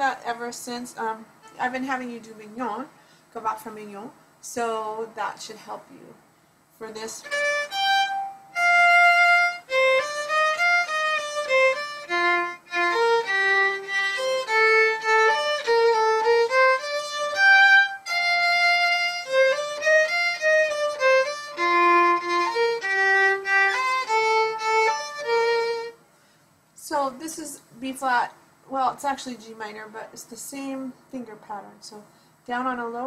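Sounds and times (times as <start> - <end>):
solo violin melody: 1.4 - 1.7, 7.0 - 26.0.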